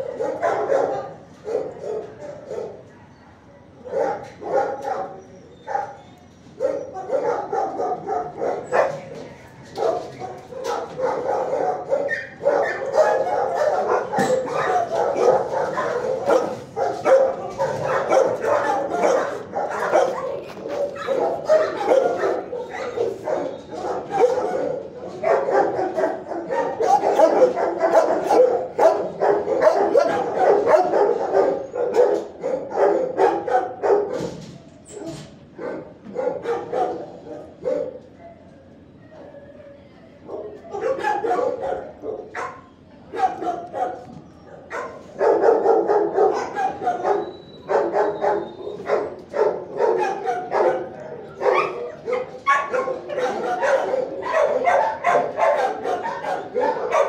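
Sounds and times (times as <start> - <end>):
dogs barking: 0.0 - 39.4, 40.2 - 57.0.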